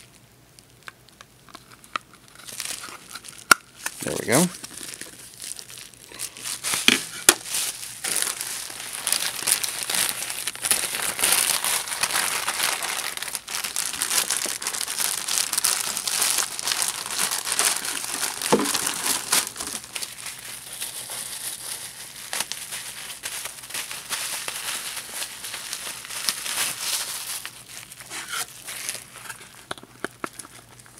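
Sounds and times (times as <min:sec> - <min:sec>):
packaging crinkling: 0:00.0 - 0:30.9.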